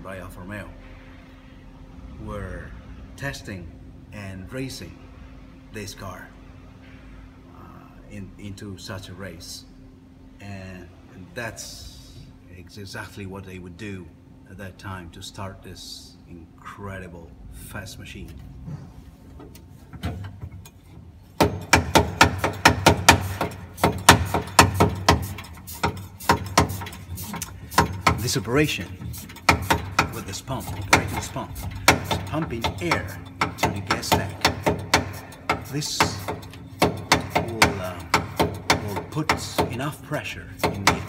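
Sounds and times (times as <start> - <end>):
hand air pump clacking: 19.9 - 41.0.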